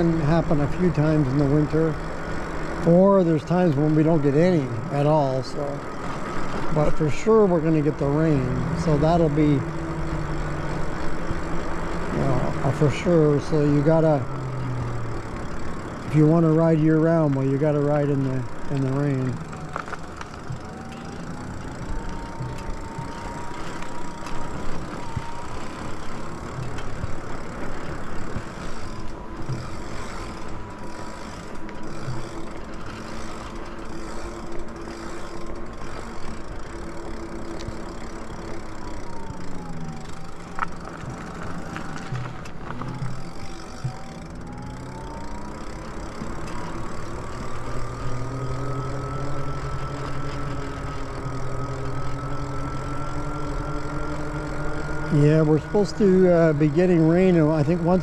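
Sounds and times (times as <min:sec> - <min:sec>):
electric motor whining: 0:00.0 - 0:58.0
wind: 0:00.0 - 0:58.0.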